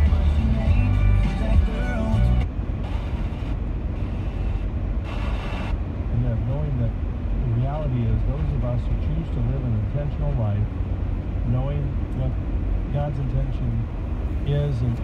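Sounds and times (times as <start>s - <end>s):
car road and engine rumble: 0.0s - 15.0s
man talking on radio: 6.1s - 10.7s, 11.5s - 15.0s.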